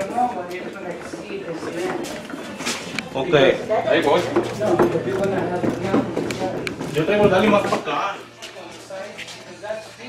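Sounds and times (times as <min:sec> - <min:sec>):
men talking: 0:03.0 - 0:10.0.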